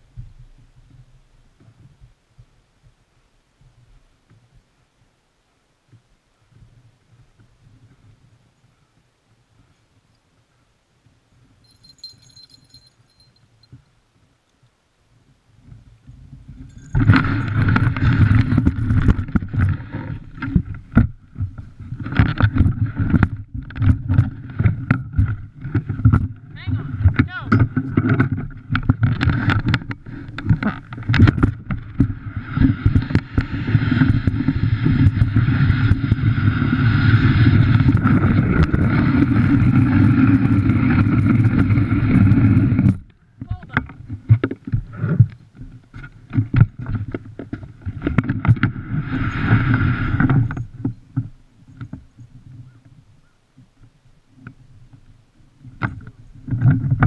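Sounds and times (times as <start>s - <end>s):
sled frame knocking and rattling: 11.6s - 13.4s, 16.1s - 52.1s
sled runners scraping on snow: 15.5s - 43.1s, 44.0s - 52.8s.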